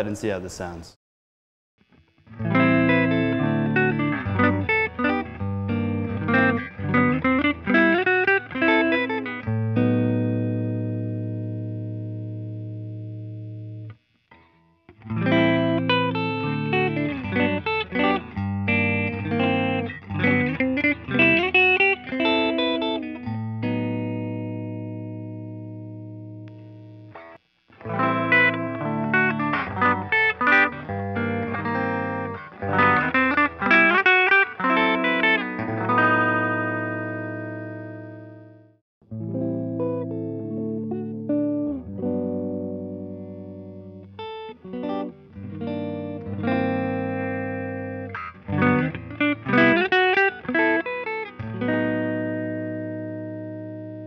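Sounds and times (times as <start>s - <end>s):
electric guitar with reverb: 1.9s - 54.0s.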